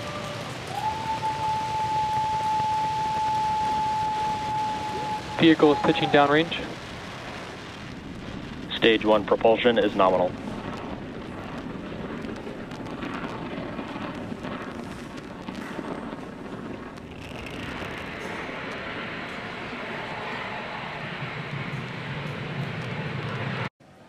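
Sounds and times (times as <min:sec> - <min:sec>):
rocket engines roaring: 0:00.0 - 0:23.7.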